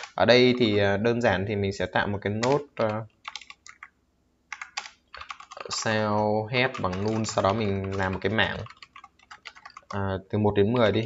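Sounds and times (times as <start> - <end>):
computer keyboard typing: 0.0 - 0.8, 2.4 - 10.0.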